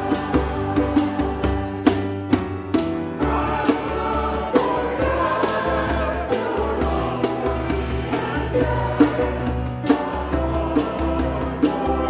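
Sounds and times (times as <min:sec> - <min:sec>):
church choir singing: 0:00.0 - 0:12.0
instrumental accompaniment: 0:00.0 - 0:12.0.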